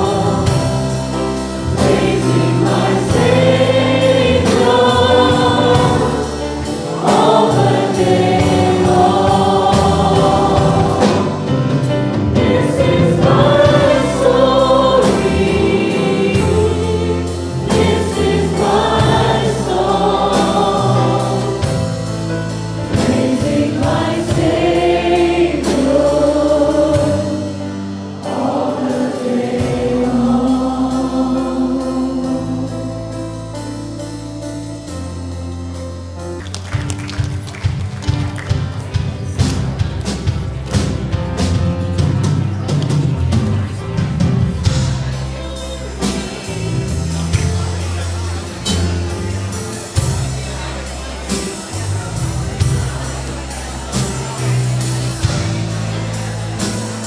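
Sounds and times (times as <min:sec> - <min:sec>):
congregation singing: 0:00.0 - 0:34.1, 0:37.1 - 0:57.0
worship band playing steady beat: 0:00.0 - 0:57.0.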